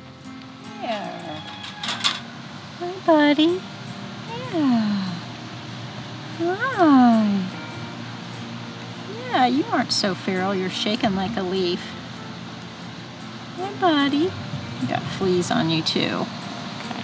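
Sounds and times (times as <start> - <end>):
sharp metallic clinks: 1.3 - 2.3.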